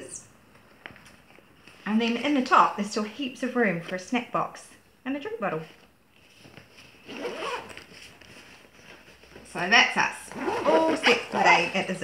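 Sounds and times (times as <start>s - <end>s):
zipper being pulled shut: 7.0s - 7.9s, 10.3s - 11.8s.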